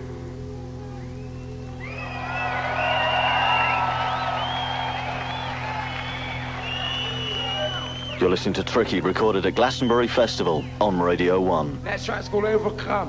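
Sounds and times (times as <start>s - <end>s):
crowd cheering and whooping: 1.8s - 8.2s.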